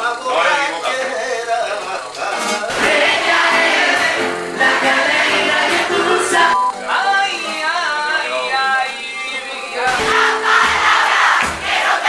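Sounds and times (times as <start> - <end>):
strummed acoustic guitar: 2.3 - 6.4, 9.8 - 12.0
live concert music: 2.4 - 8.2, 8.9 - 12.0
man singing: 6.7 - 10.2.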